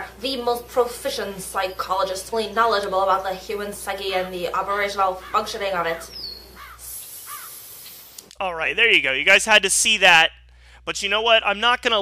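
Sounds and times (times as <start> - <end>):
bird-like chirps: 5.2 - 8.0
light hiss: 6.1 - 8.4.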